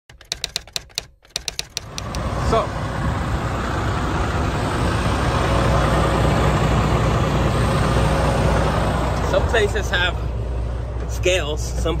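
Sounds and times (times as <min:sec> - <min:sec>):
keyboard typing clicks: 0:00.0 - 0:02.2.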